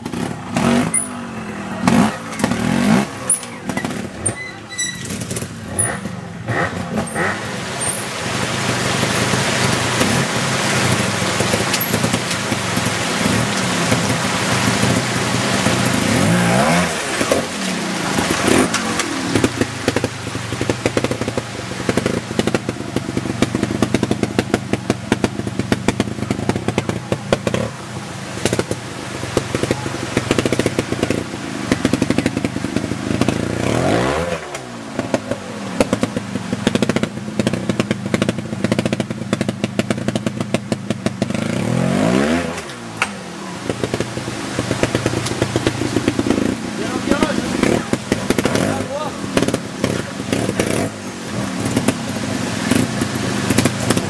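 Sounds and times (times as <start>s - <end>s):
creek rushing: 0.0s - 54.0s
motorcycle engine revving: 0.0s - 54.0s.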